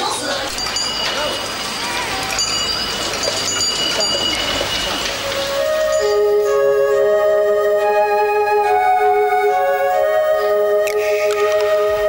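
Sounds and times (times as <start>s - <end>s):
crowd chatter: 0.0s - 7.9s
bicycle bell rings: 0.6s - 5.2s
soft flute melody: 4.3s - 12.0s.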